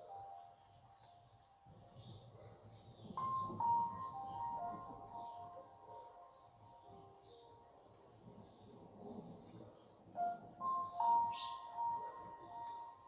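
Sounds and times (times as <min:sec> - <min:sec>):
birds chirping: 0:00.0 - 0:13.0
soft meditation music: 0:00.0 - 0:13.0.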